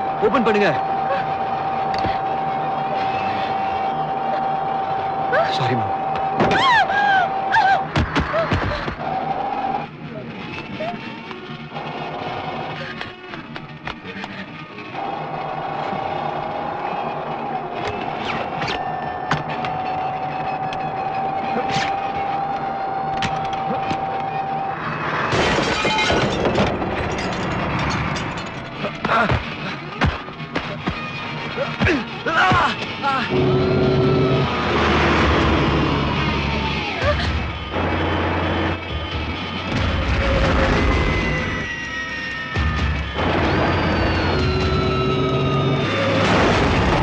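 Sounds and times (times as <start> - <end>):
dramatic film score: 0.0 - 47.0
glass shattering: 25.3 - 28.8
loud crash: 43.0 - 47.0.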